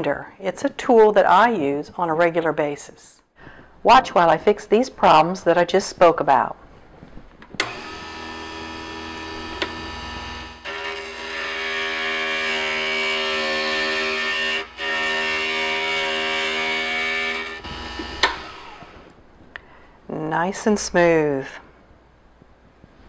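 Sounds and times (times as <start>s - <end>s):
grinder motor hum: 7.6s - 19.1s
glass grinding: 7.9s - 18.9s.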